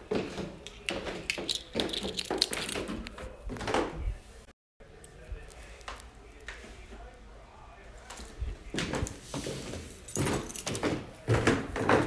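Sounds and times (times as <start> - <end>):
footsteps on wooden floor: 0.0 - 1.5.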